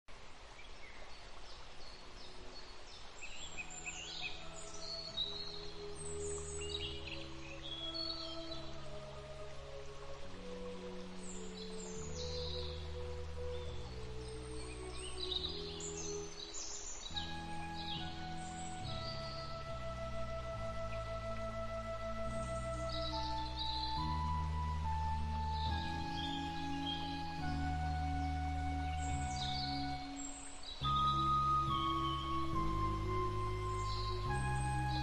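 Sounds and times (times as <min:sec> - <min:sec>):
birds chirping: 0:00.6 - 0:10.0, 0:10.6 - 0:35.0
slow ambient music: 0:02.3 - 0:35.0.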